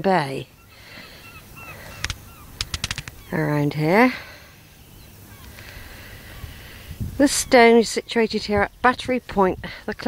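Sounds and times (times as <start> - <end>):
distant birds calling: 0.0 - 9.0
sharp clicks: 1.9 - 3.3.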